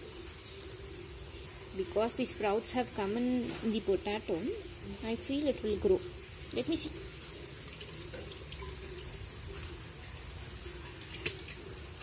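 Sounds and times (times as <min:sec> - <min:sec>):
faint hiss of running water: 0:00.0 - 0:12.0.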